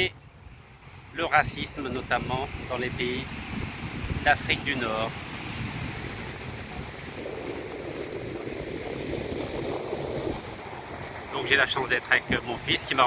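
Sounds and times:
wind buffeting microphone: 0.0s - 13.0s
ocean surf breaking: 0.7s - 13.0s.

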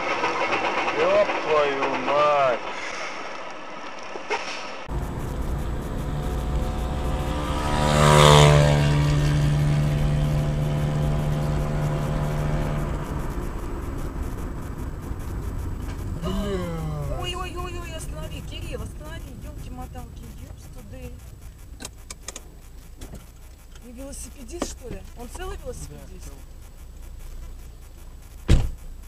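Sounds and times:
vehicle engine hum and road noise: 3.6s - 29.0s.

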